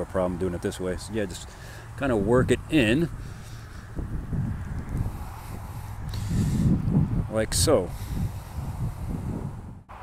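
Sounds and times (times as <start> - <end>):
wind rumble on microphone: 2.0 - 10.0.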